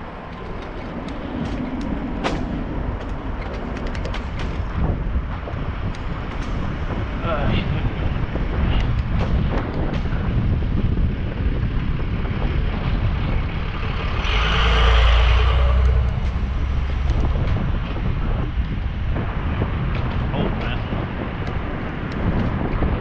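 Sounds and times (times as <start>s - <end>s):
road rumble: 0.0s - 23.0s
wind buffeting microphone: 0.0s - 23.0s.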